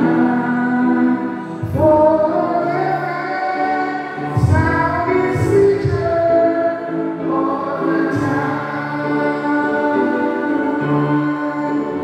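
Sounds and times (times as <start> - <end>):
voices singing a slow hymn: 0.0 - 12.0.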